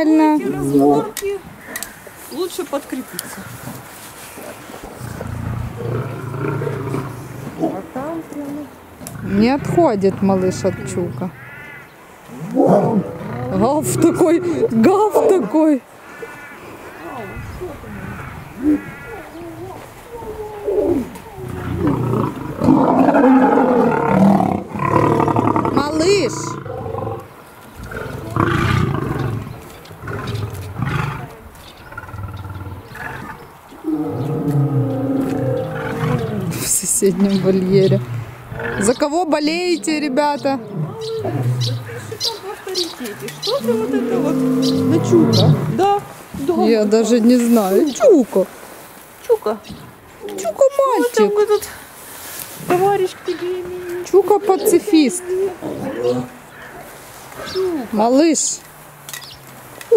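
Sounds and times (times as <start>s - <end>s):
lion growling: 5.0s - 7.9s, 12.3s - 14.8s, 20.3s - 36.7s, 37.5s - 39.0s, 40.4s - 42.2s, 43.0s - 46.1s, 55.3s - 56.8s.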